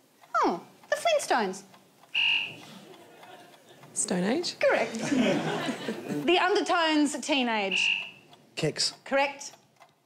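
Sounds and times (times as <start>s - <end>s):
low room noise: 0.0s - 10.0s
quiz buzzer tone: 2.1s - 2.7s, 7.6s - 8.2s.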